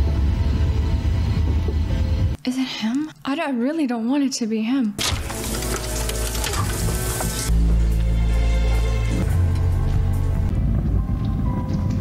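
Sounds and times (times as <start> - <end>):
soundtrack music: 5.0 - 12.0
deep heavy rumble: 6.7 - 12.0.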